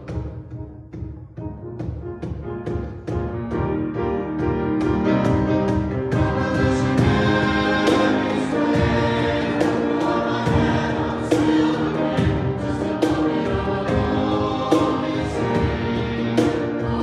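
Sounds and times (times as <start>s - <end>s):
piano accompaniment: 0.0s - 17.0s
cajon beat: 4.4s - 17.0s
choir singing in parts: 5.8s - 17.0s.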